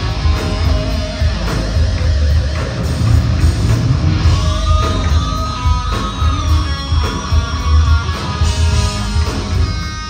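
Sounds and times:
electric guitars: 0.0 - 10.0
hard rock band playing live: 0.0 - 10.0.

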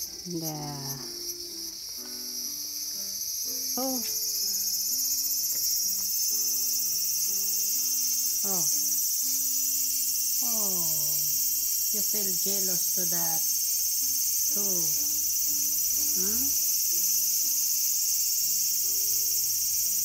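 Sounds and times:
cicada buzzing: 0.0 - 20.0.

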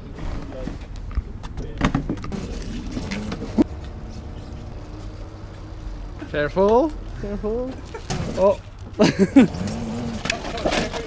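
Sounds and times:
people laughing and exclaiming: 8.9 - 9.6.

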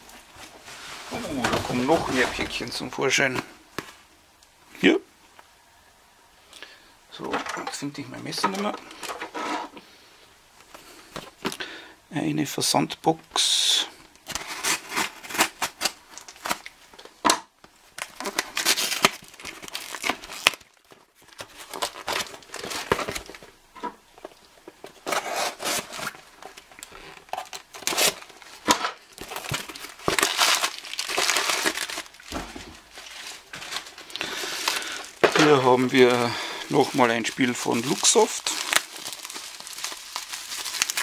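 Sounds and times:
plastic bags crinkling: 0.1 - 3.5, 14.3 - 17.1, 17.9 - 23.6, 24.2 - 41.0
knife slitting packing tape: 25.0 - 26.1.

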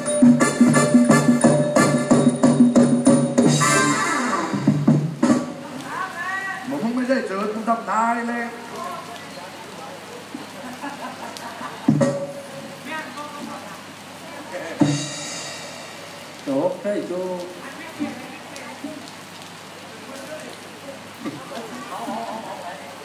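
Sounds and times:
high ringing: 0.0 - 4.0
sharp percussion strikes: 0.0 - 5.6, 11.9 - 12.7, 14.8 - 16.3
steady hiss: 0.0 - 23.0.

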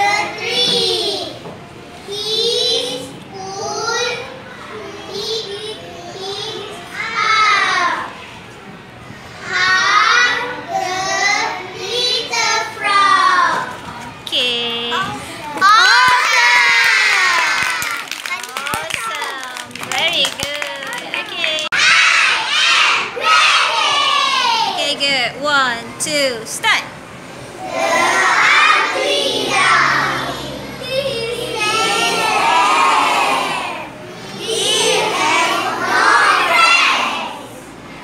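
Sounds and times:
children cheering: 15.6 - 19.8, 28.0 - 33.9
children singing in unison: 27.6 - 37.6.

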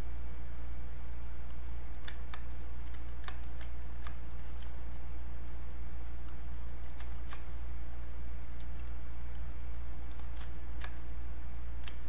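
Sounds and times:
steady low hum: 0.0 - 12.0
computer mouse clicks: 1.4 - 7.6, 8.6 - 11.1, 11.8 - 12.0.

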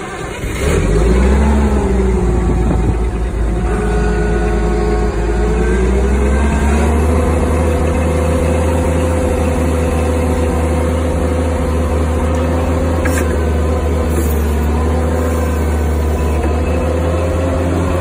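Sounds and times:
forklift engine starting and running: 0.0 - 18.0.

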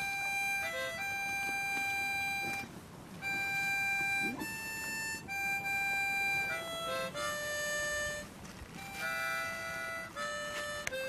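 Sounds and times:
long held instrumental note: 0.0 - 11.0.

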